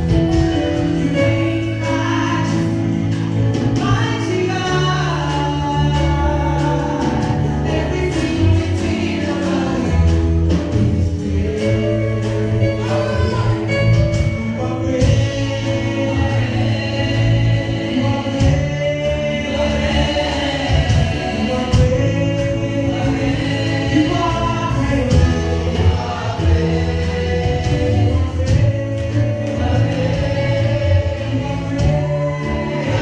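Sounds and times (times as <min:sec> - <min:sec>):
group singing gospel song: 0:00.0 - 0:33.0
keyboard: 0:00.0 - 0:33.0
steady bass: 0:00.0 - 0:33.0.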